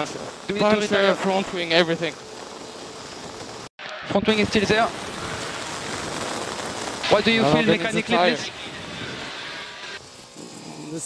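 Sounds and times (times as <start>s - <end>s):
radio channel hiss: 0.0s - 11.0s.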